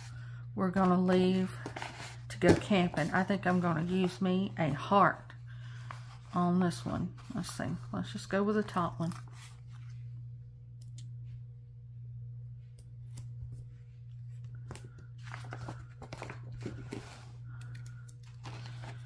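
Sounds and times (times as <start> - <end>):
steady low hum: 0.0 - 19.0
paper rustling and crinkling: 0.7 - 4.5, 8.6 - 10.0, 15.2 - 17.4, 18.2 - 19.0.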